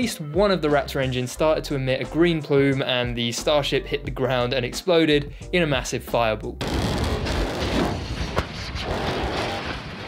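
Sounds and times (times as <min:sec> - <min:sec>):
rumbling roar of explosion: 0:06.6 - 0:10.0
sharp crack: 0:06.6 - 0:10.0.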